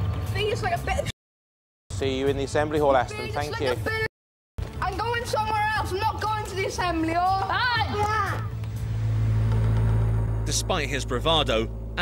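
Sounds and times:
boy shouting: 3.1s - 4.1s, 4.8s - 8.5s
steady low rumble: 8.6s - 12.0s.

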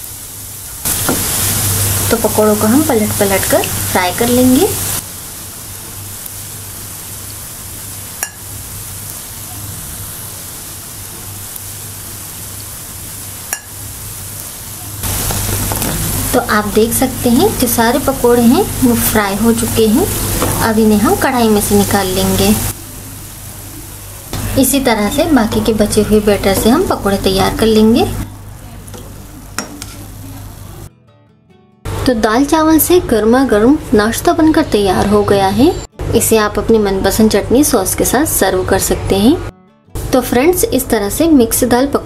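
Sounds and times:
food deep-frying in oil: 0.0s - 30.9s.

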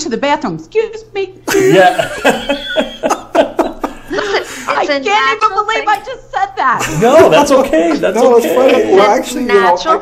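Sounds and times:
people laughing: 1.5s - 4.8s, 6.8s - 8.9s.

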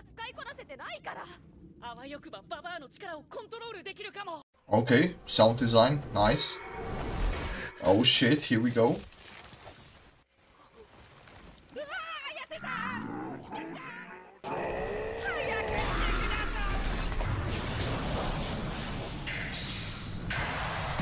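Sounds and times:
strained vocal cry: 12.5s - 16.7s.

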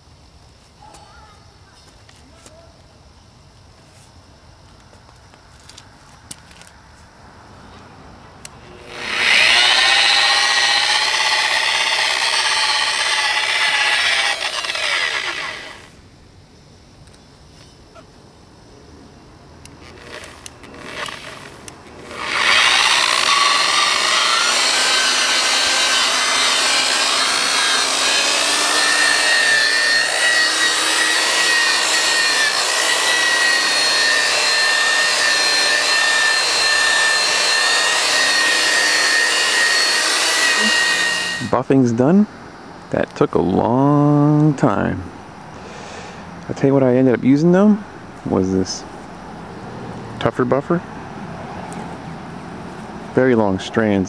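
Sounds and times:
electric buffer whining: 8.4s - 16.0s, 19.6s - 41.7s.

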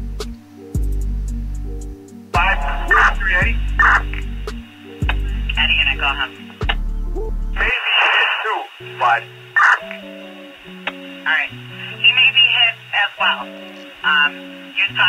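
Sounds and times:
low melody of held notes: 0.0s - 7.7s, 8.8s - 15.0s
loud radio buzz: 2.4s - 4.2s, 7.6s - 9.9s, 11.2s - 13.5s
garbled radio transmissions: 2.4s - 6.8s, 7.6s - 15.0s.

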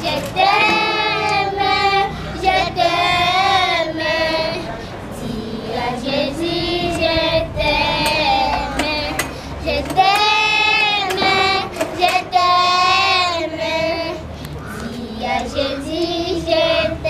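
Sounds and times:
children singing in unison: 0.0s - 17.0s.

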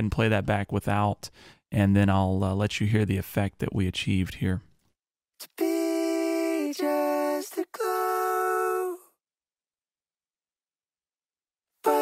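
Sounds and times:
layered voices singing notes: 5.4s - 9.1s.

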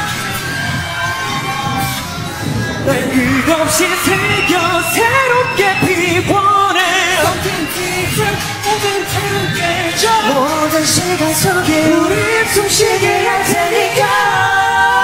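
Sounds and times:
faint backing music: 0.0s - 15.0s
men singing: 2.4s - 15.0s.

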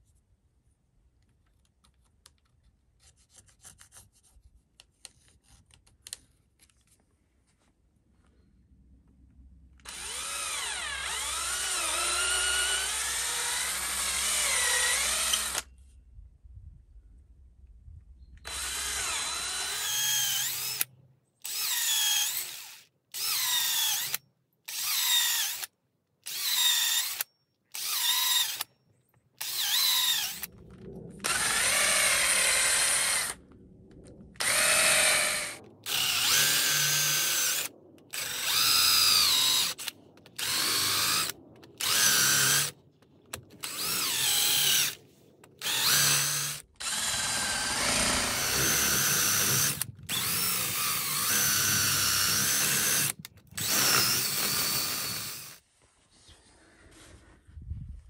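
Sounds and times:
cordless drill boring into wood: 9.8s - 15.7s, 18.4s - 28.7s, 29.4s - 30.5s, 31.2s - 33.4s, 34.4s - 42.8s, 43.6s - 45.0s, 45.6s - 55.6s.

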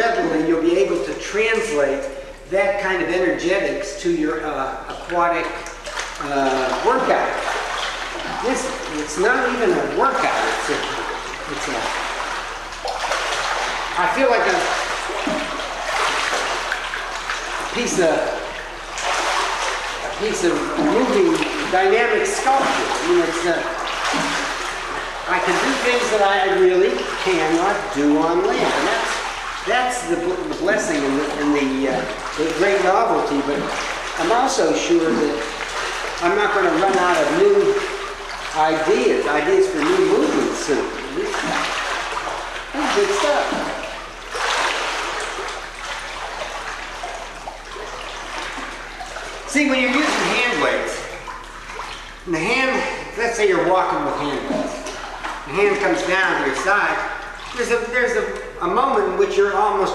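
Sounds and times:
pool water splashing and churning: 0.0s - 59.9s.

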